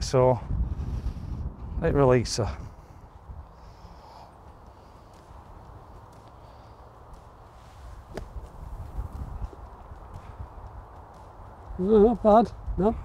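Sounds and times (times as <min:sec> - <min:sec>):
wind on microphone: 0:00.0 - 0:04.7, 0:07.8 - 0:13.0
golf club striking ball: 0:08.0 - 0:09.6.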